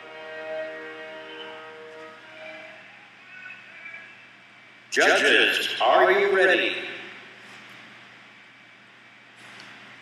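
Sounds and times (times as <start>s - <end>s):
faint indoor arena background noise: 0.0s - 10.0s.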